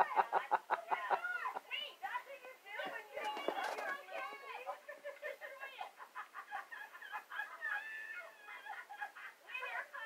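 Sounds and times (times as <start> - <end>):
television show audio: 0.0 - 10.0.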